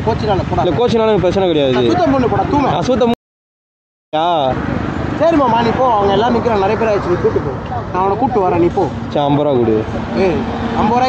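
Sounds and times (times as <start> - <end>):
motorcycle engines running: 0.0 - 3.1, 4.2 - 11.0
men talking loudly: 0.0 - 3.2, 4.2 - 11.0.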